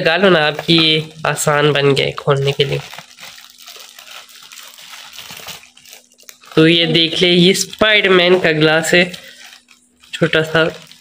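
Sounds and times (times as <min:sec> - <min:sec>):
plastic packaging rustling: 0:00.0 - 0:11.0.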